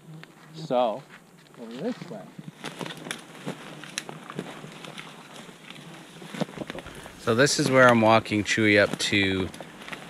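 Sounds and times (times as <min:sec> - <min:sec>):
twigs crackling underfoot: 0:00.1 - 0:10.0
footsteps on forest floor: 0:00.3 - 0:10.0.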